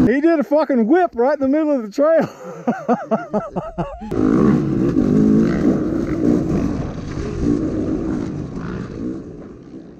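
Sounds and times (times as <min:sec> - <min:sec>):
dirt bike engine revving: 0:04.1 - 0:09.9.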